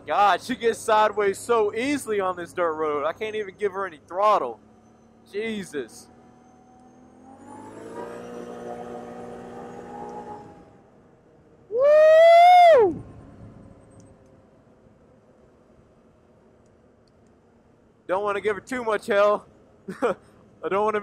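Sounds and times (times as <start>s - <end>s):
atv engine under throttle: 4.0s - 10.8s.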